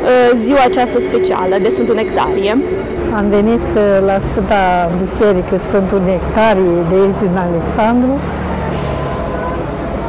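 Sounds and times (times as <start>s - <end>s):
motor vehicle rumbling: 0.0s - 10.0s.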